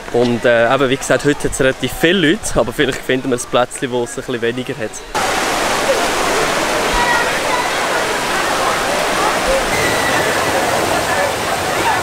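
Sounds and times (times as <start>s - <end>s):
crowd chatter: 0.0s - 12.0s
water rushing over cascades: 0.0s - 12.0s.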